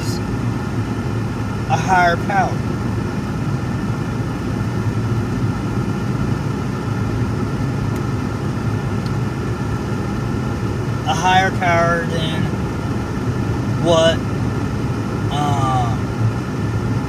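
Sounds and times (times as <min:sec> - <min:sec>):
car engine drone: 0:00.0 - 0:17.0.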